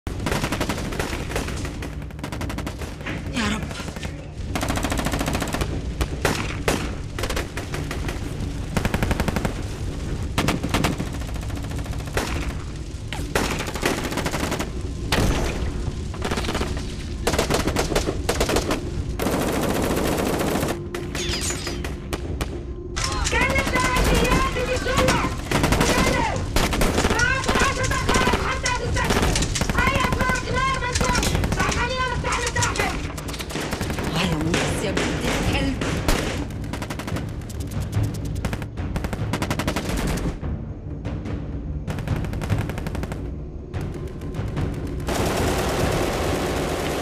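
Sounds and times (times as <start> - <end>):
steady low drone: 33.1 - 47.0.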